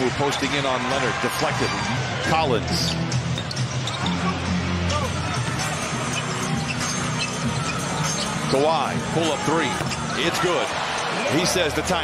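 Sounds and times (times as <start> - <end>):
arena music over pa: 0.0 - 12.0.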